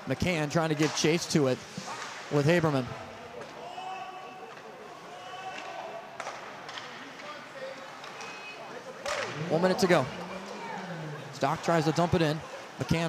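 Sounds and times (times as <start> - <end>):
hockey sticks and puck clacking: 0.8 - 2.4, 5.5 - 9.4
faint distant voices: 8.6 - 13.0.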